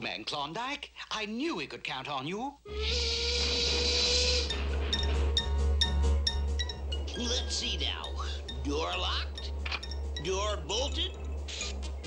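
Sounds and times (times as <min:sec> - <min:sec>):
steam locomotive whistle: 0:02.8 - 0:04.6.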